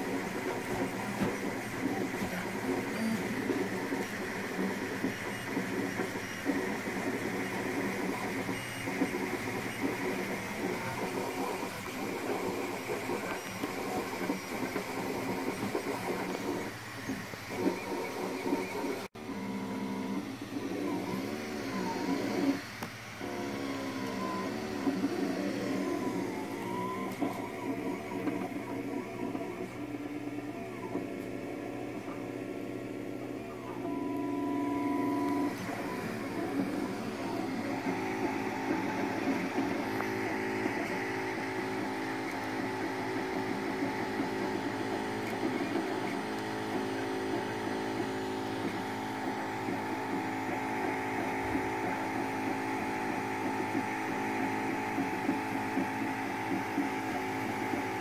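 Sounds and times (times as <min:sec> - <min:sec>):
stepper motors whining: 0:00.0 - 0:31.6
cooling fan whirring: 0:00.0 - 0:58.0.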